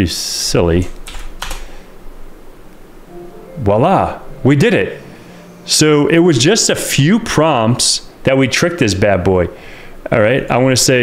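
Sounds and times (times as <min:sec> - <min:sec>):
faint room hum: 0:00.0 - 0:11.0
keyboard keystrokes: 0:00.8 - 0:01.6.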